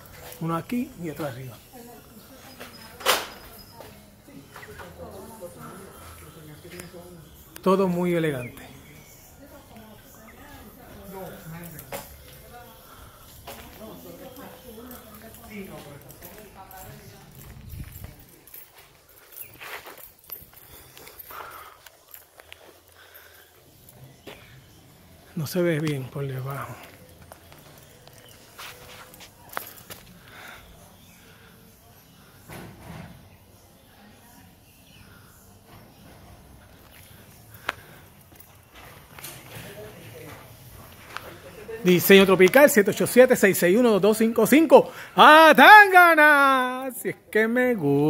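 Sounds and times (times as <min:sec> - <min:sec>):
faint indistinct voices: 0:00.0 - 0:43.7
footsteps on concrete: 0:13.3 - 0:23.2, 0:24.2 - 0:24.6, 0:25.8 - 0:30.6, 0:36.3 - 0:42.6
faint indistinct speech: 0:26.6 - 0:41.8.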